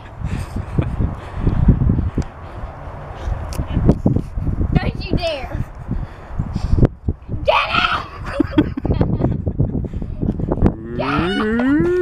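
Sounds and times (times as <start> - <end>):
child squealing: 10.9 - 12.0
child wailing: 10.9 - 12.0.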